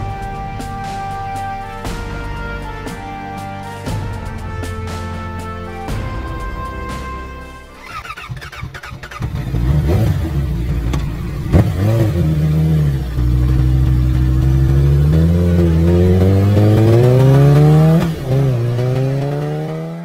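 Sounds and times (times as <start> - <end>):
motorcycle engine revving: 7.7 - 20.0.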